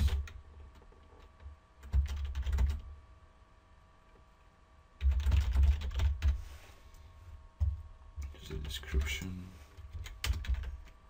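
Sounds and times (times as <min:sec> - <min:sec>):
computer keyboard typing: 0:00.0 - 0:02.9, 0:05.0 - 0:06.4, 0:09.8 - 0:11.0.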